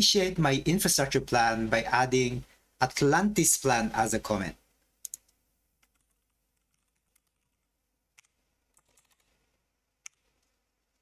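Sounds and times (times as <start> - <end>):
computer keyboard clicks: 5.0 - 9.4, 10.0 - 11.0.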